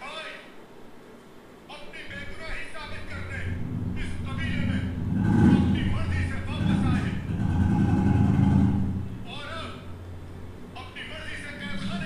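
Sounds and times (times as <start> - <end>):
dialogue: 1.6 - 12.0
heavy low rumble: 2.1 - 12.0.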